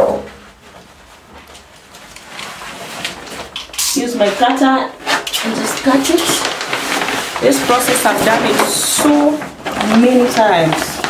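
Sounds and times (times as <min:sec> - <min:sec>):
wallpaper sheet rustling: 0:00.0 - 0:11.0
sharp paper crinkle: 0:00.9 - 0:11.0.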